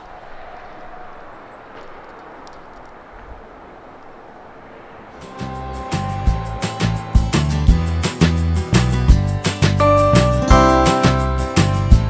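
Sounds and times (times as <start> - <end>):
outdoor background hiss: 0.0 - 9.8
strummed guitar music: 5.2 - 12.0.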